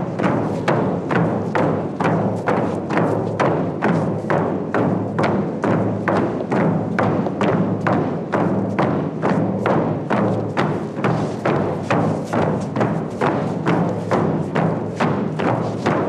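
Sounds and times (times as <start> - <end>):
frame drum beaten with stick: 0.0 - 16.0.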